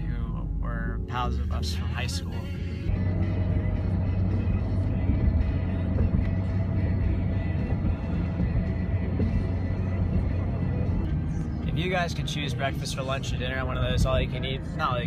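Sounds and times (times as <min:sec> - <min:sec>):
music playing: 0:00.0 - 0:15.0
road and engine rumble inside car: 0:00.0 - 0:15.0.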